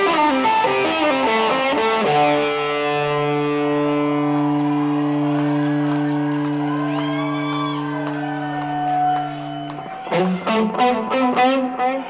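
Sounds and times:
crowd shouting: 0:03.0 - 0:12.0.

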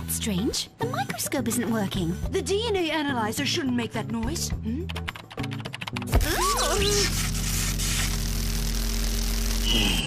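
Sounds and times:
electrical buzz and crackle: 0:06.2 - 0:10.0.

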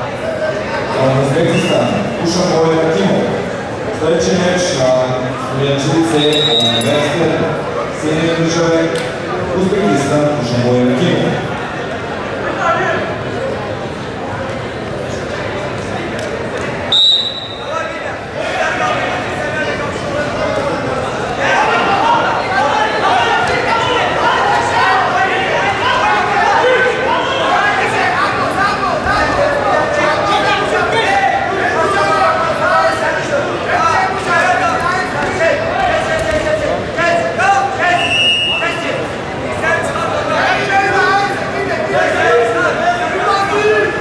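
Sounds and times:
crowd murmur and voices: 0:00.0 - 0:44.0
referee's whistle blast: 0:06.2 - 0:06.9, 0:16.9 - 0:17.7.

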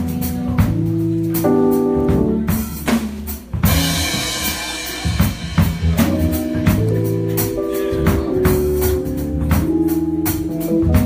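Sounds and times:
band playing held notes: 0:00.0 - 0:11.0
drum kit playing: 0:00.0 - 0:11.0.

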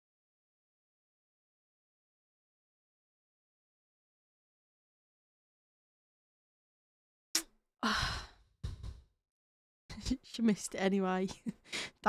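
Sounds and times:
short breath: 0:07.8 - 0:08.4
woman sighing: 0:07.8 - 0:08.4.

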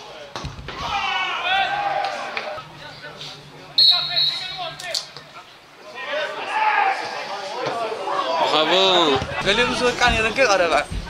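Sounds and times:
referee's whistle blast: 0:03.7 - 0:04.8
dull thump: 0:09.2 - 0:11.0.

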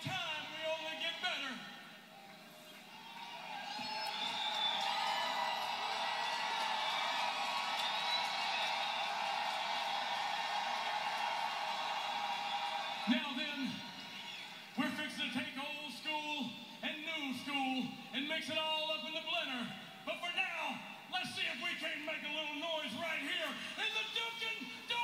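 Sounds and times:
man speaking into a microphone: 0:00.0 - 0:01.7, 0:13.1 - 0:13.8, 0:14.8 - 0:25.0
arena crowd cheering: 0:00.0 - 0:25.0.

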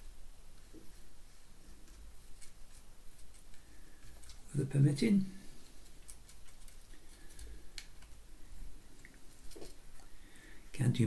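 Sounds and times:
paintbrush ticking and scratching: 0:00.0 - 0:10.1.

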